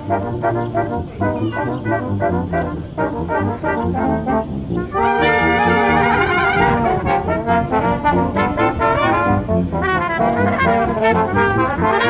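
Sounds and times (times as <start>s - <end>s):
brass quintet playing: 0.0s - 12.0s.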